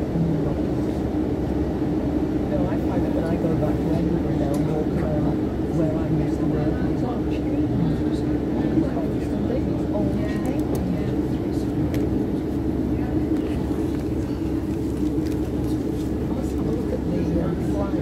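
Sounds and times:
train diesel engine drone: 0:00.0 - 0:18.0
wheel and rail rumble: 0:00.0 - 0:18.0.

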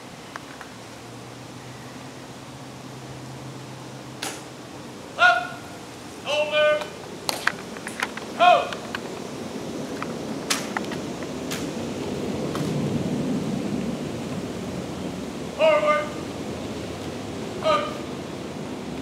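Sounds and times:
soldier calling commands: 0:05.1 - 0:07.0, 0:08.3 - 0:08.8, 0:15.6 - 0:16.3, 0:17.6 - 0:18.2.

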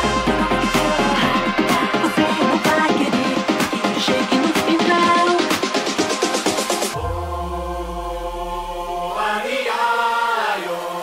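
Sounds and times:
choir-like vocal line: 0:00.0 - 0:11.0
sustained synth chord: 0:06.9 - 0:09.4
deep bass note: 0:07.0 - 0:09.2.

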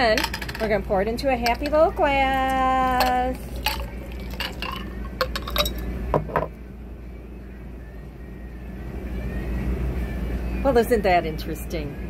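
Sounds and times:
ice clinking against glass: 0:01.4 - 0:06.5.

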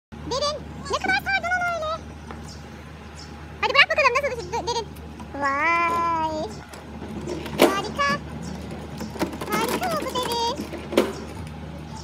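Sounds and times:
steady low hum: 0:00.1 - 0:12.0.

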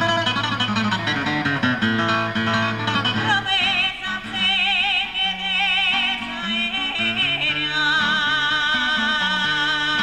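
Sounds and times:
woman singing with vibrato: 0:02.9 - 0:10.0.

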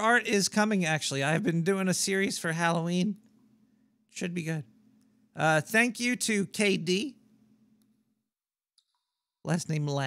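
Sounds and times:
man speaking: 0:00.0 - 0:03.3, 0:04.1 - 0:04.7, 0:05.3 - 0:07.2.

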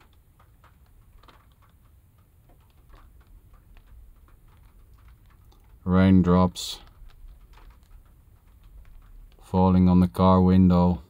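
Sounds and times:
low steady rumble: 0:00.0 - 0:11.0
raindrops tapping on car: 0:00.0 - 0:11.0.

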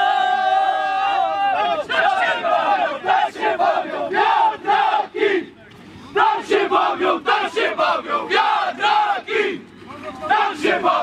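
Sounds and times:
rhythmic chant of short shouts: 0:00.0 - 0:11.0.

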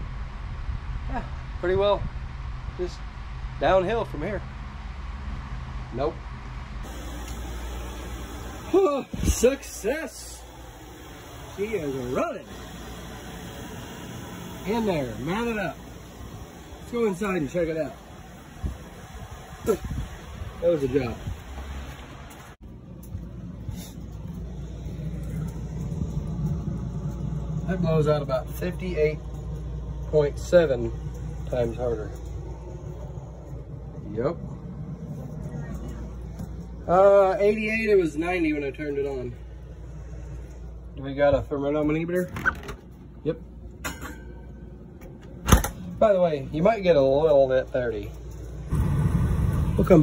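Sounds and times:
air-conditioning unit humming: 0:00.0 - 0:50.0.

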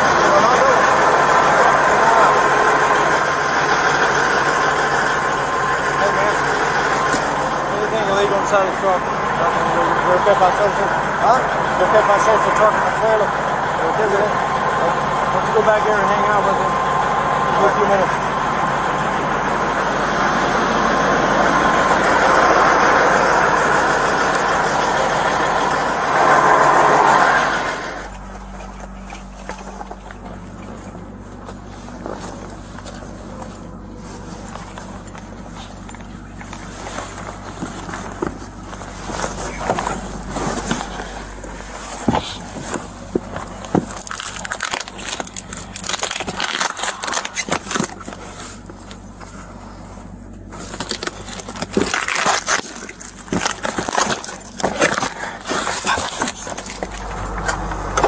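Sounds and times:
low steady hum: 0:00.0 - 0:58.0
roadside traffic rushing: 0:00.0 - 0:58.0
bags and bedding rustling: 0:28.1 - 0:58.0.

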